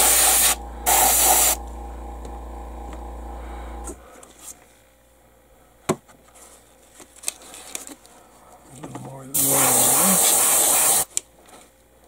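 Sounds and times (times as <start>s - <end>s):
airbrush hissing: 0.0s - 1.6s, 9.3s - 11.1s.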